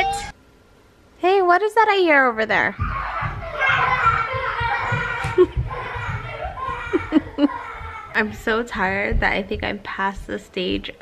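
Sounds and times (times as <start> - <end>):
children chattering: 2.8 - 8.7.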